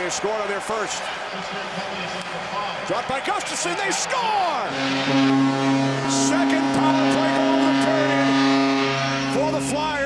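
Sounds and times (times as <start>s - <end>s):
arena hum: 4.7s - 9.7s.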